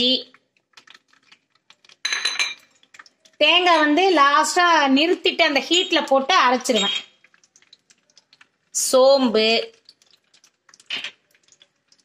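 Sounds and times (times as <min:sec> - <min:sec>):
oil crackling and popping: 0:00.0 - 0:12.0.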